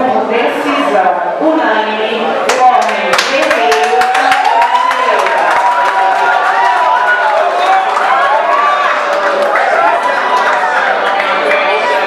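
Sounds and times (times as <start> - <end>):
spectators clapping: 2.5 - 12.0.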